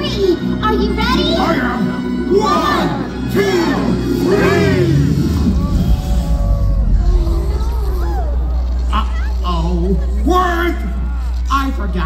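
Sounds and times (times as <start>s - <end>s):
background music: 0.0s - 12.0s
scattered voices: 0.0s - 12.0s
crowd shouting together: 1.3s - 8.6s.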